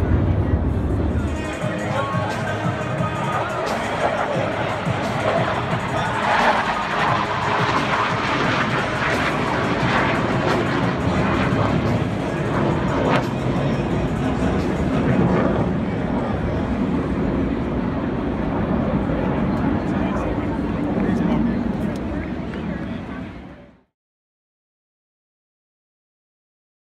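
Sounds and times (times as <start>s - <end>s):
music: 0.0s - 17.2s
jet passing over: 0.0s - 23.6s
stadium crowd noise: 0.0s - 23.9s.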